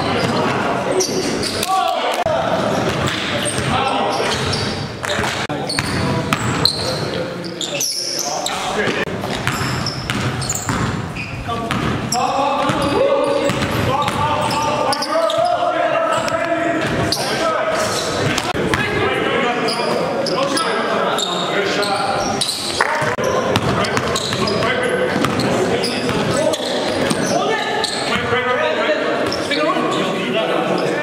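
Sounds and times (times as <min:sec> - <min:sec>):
basketball bouncing on gym floor: 0:09.2 - 0:14.6.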